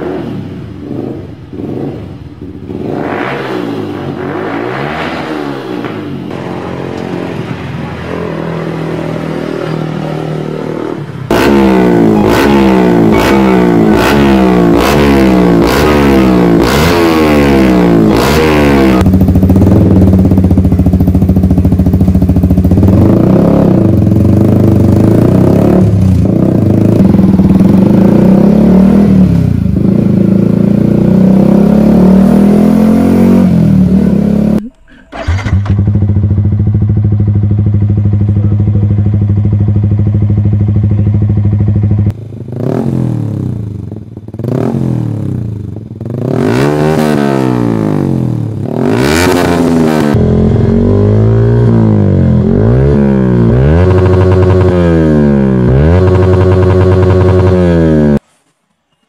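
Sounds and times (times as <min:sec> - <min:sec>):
motorcycle engine idling and revving: 0:00.0 - 0:58.3.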